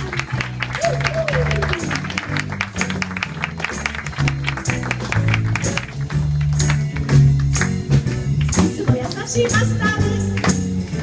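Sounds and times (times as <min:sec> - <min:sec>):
audience clapping along: 0:00.0 - 0:11.0
electric bass guitar: 0:00.0 - 0:11.0
piano: 0:00.0 - 0:11.0.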